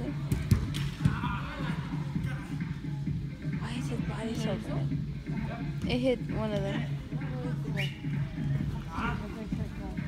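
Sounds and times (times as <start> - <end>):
background music: 0.0 - 10.0
soccer ball kick thump: 0.2 - 1.2.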